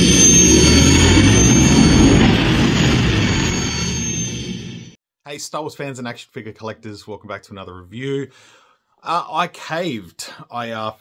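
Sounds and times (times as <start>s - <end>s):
spaceship engine rumble: 0.0s - 5.0s
thin high whine: 0.0s - 5.0s.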